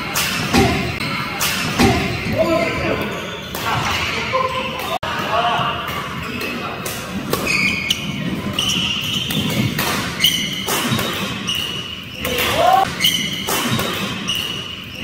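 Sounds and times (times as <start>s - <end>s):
shoes squeaking on court: 1.0s - 5.0s, 5.9s - 15.0s
racket hitting shuttlecock: 9.2s - 14.8s.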